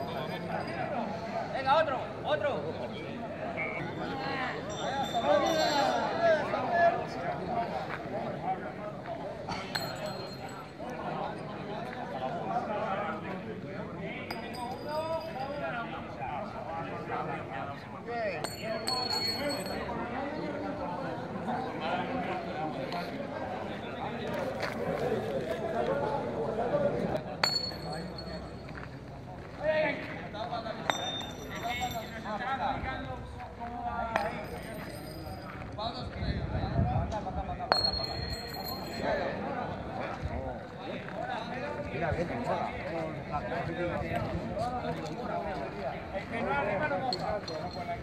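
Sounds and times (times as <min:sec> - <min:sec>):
men talking: 0:00.0 - 0:48.0
ringing metallic clink: 0:04.7 - 0:06.2, 0:09.5 - 0:10.8, 0:14.3 - 0:15.6, 0:18.4 - 0:20.0, 0:27.4 - 0:28.8, 0:30.8 - 0:32.4, 0:34.1 - 0:35.6, 0:37.7 - 0:39.2.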